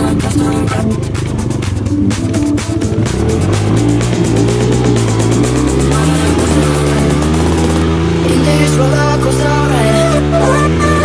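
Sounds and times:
background music: 0:00.0 - 0:11.0
dirt bike engine revving: 0:00.0 - 0:11.0.

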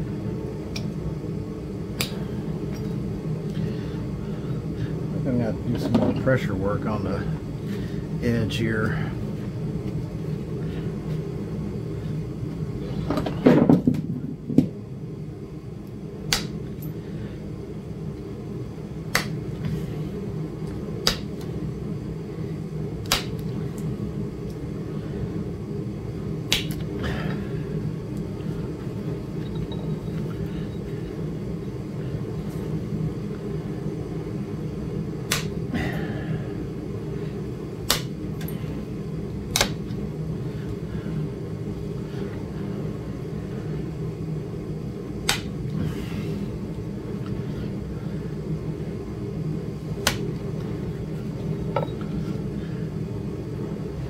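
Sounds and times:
steady low rumble: 0:00.0 - 0:13.1, 0:13.8 - 0:54.0.

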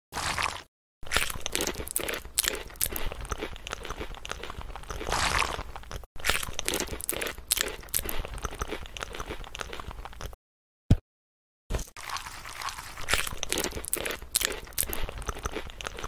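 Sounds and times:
crunchy chewing of vegetables: 0:00.2 - 0:10.4, 0:11.8 - 0:16.0.

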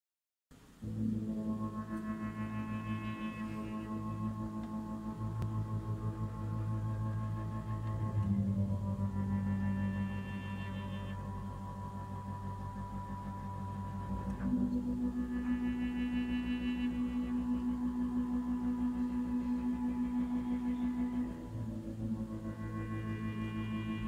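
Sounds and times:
synthesizer pad chords: 0:00.8 - 0:24.0.

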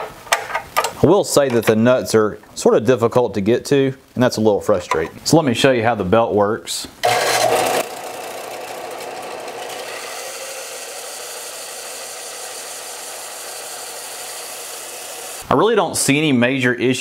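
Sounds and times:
belt sander sanding wood: 0:07.0 - 0:15.4.

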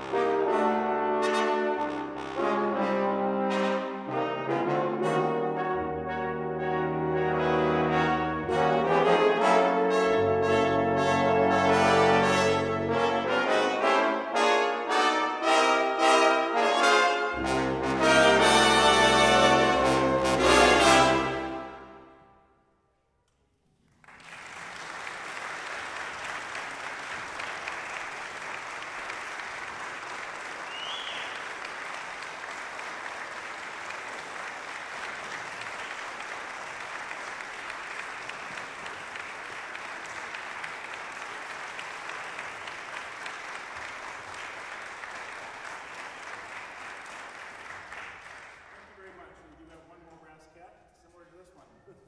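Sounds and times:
audience applauding: 0:23.9 - 0:49.3.

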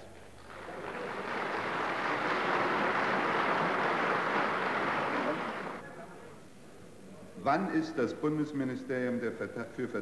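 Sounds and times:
applause in a chamber: 0:00.0 - 0:05.8.

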